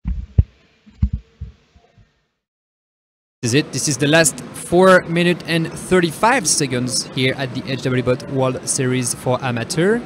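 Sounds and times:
soft dull low thumps: 0.0 - 1.6.

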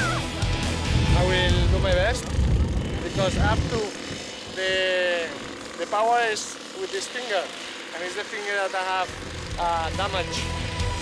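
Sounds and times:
low rumbling noise: 0.1 - 5.8.

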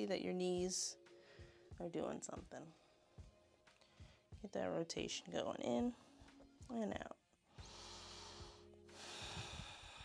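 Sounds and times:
person breathing hard: 7.6 - 10.0.

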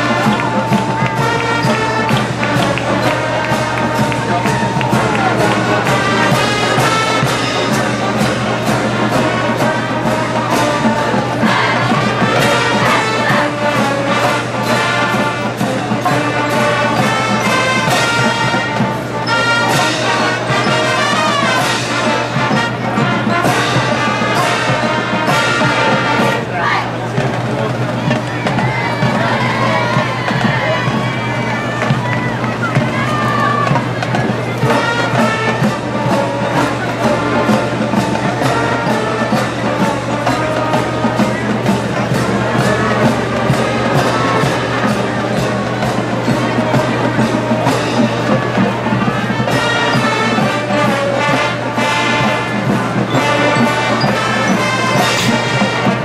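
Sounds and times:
marching band playing: 0.0 - 56.0
steady drum beat: 0.0 - 56.0.

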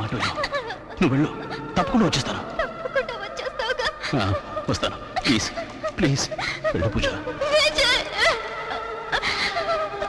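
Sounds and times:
melodramatic film score: 0.0 - 10.0
man sobbing: 4.1 - 7.4.

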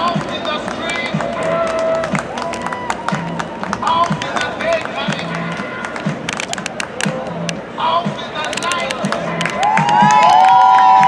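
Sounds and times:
sharp claps: 0.0 - 7.2, 8.4 - 11.0
crowd chatter: 0.0 - 11.0
faint music with steady beat: 0.0 - 11.0.

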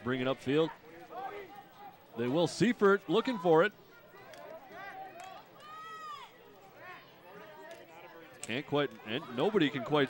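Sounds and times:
faint sharp clicks: 4.2 - 4.5, 5.1 - 5.4.

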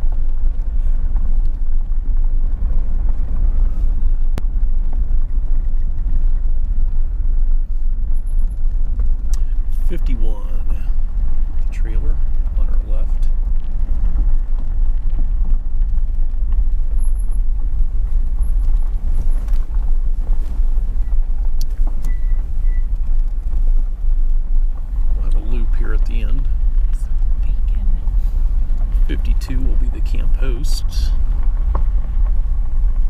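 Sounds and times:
vehicle driving on gravel: 0.0 - 33.0.

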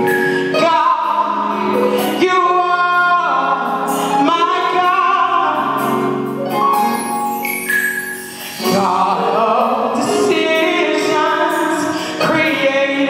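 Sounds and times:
woman singing gospel into microphone: 0.3 - 5.9, 8.5 - 13.0.

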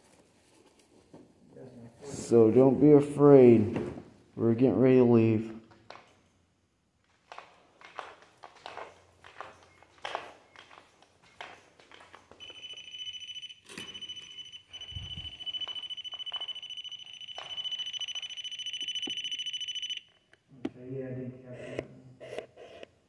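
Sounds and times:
shrill pulsing alarm tone: 12.4 - 20.2.

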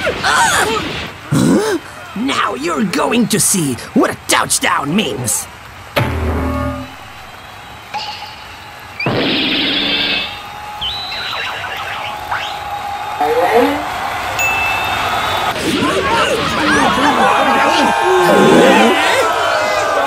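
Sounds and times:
cartoon hit with falling tone: 6.0 - 7.3.

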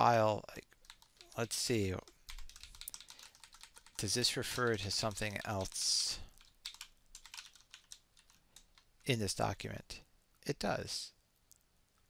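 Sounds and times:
computer keyboard taps: 6.4 - 8.9.

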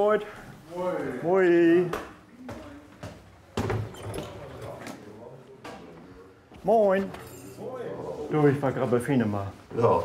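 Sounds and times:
light footsteps on stairs: 1.9 - 3.8.

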